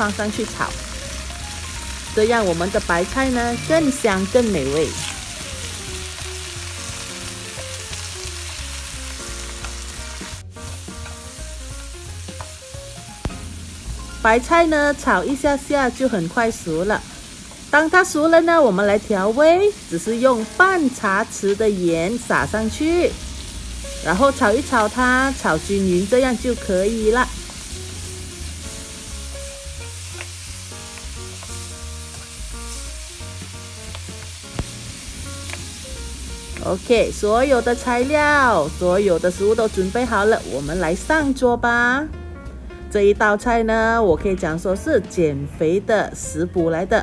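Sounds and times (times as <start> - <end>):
vegetables sizzling in a wok: 0.0 - 42.1
background music: 0.0 - 47.0.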